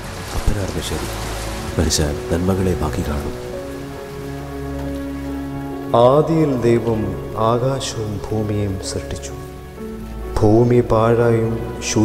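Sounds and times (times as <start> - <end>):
steady rain hiss: 0.0 - 12.0.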